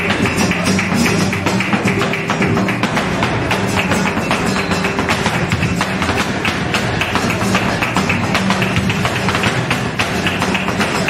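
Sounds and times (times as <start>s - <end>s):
dancer's footwork strikes: 0.0s - 11.0s
flamenco guitar: 0.0s - 11.0s
handclaps: 0.0s - 11.0s.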